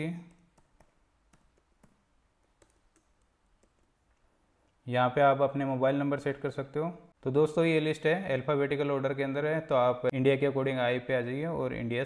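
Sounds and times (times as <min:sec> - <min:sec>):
faint keyboard clicking: 0:00.3 - 0:04.8.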